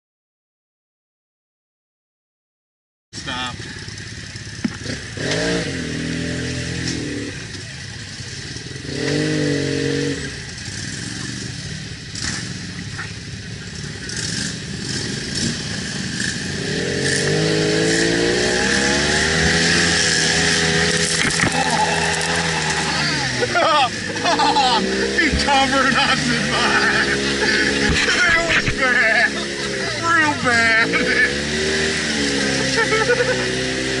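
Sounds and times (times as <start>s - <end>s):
engine revving: 3.2s - 34.0s.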